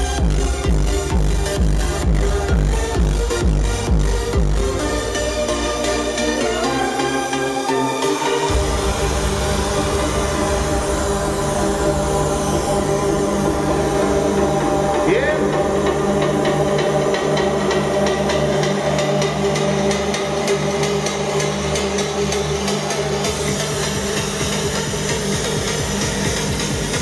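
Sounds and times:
progressive house music: 0:00.0 - 0:27.0
rapid drum hits: 0:08.5 - 0:15.3.

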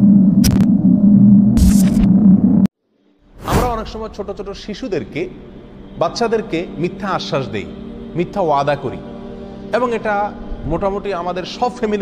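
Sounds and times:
low buzzing hum: 0:00.0 - 0:02.7
static crackle bursts: 0:00.4 - 0:00.8, 0:01.6 - 0:02.6.

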